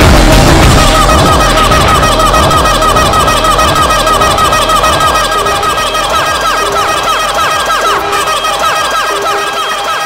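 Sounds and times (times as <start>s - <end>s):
low kick drum: 0.0s - 4.7s
warbling synth figure: 0.4s - 10.0s.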